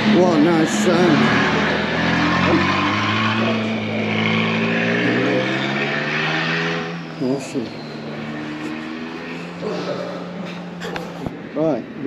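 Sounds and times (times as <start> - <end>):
man speaking: 0.0 - 1.6, 7.2 - 7.8, 9.6 - 10.4
steady engine hum: 0.0 - 12.0.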